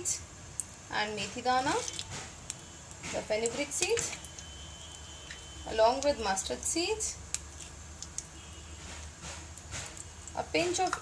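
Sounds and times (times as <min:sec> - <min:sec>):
seeds sizzling in hot oil: 0:00.0 - 0:11.0.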